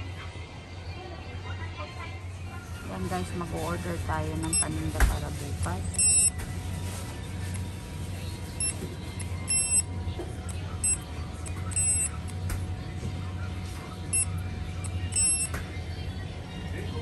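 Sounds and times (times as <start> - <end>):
short high electronic beeps: 10.8 - 12.2, 15.1 - 15.5.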